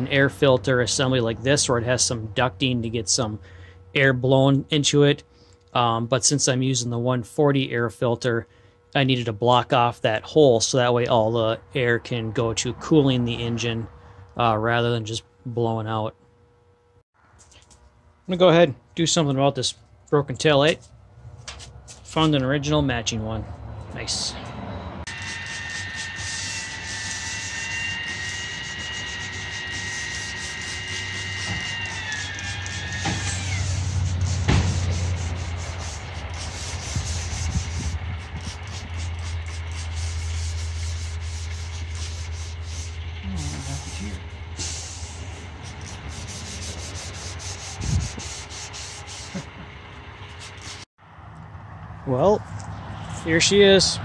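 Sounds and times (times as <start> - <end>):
steady low hum: 0.0 - 54.0
high whine falling in pitch: 25.0 - 34.1
pad scrubbing sheet metal: 25.1 - 49.6.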